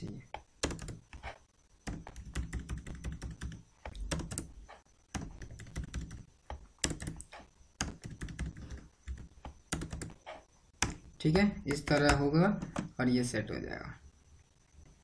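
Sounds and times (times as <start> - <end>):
keyboard keys clicking: 1.9 - 6.2, 6.8 - 10.2, 11.7 - 12.9.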